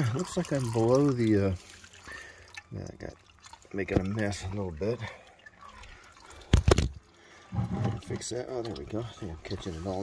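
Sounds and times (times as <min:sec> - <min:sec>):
fluid trickling into bucket: 0:00.0 - 0:10.0
plastic bucket knocking and scraping: 0:07.5 - 0:08.4.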